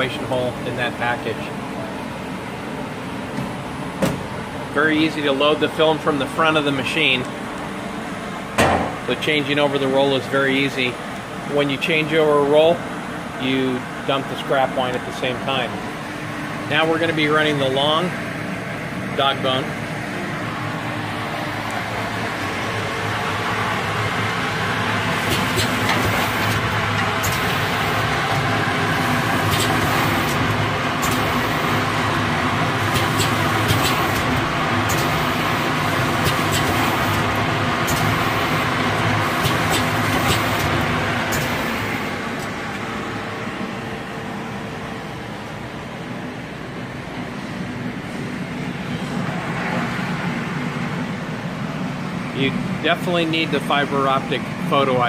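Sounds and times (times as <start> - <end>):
packaging machine humming: 12.0 - 45.4.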